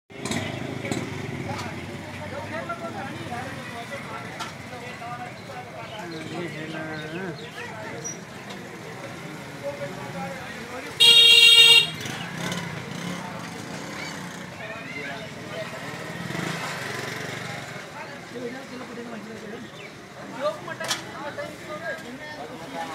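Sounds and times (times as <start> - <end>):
motorcycles passing: 0.1 - 22.9
people's voices: 0.2 - 22.9
vehicle horn honk: 11.0 - 12.1.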